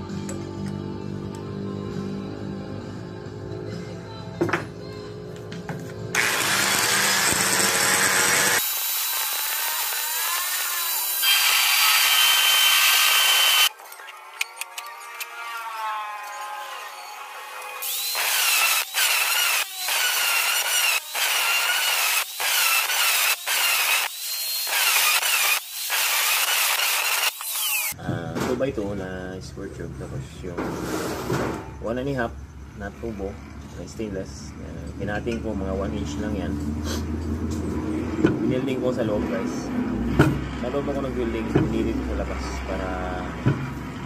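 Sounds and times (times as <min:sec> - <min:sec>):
electric drill spinning metal part: 0:06.1 - 0:13.7, 0:14.4 - 0:28.0
high-pitched metal squealing: 0:09.2 - 0:18.6.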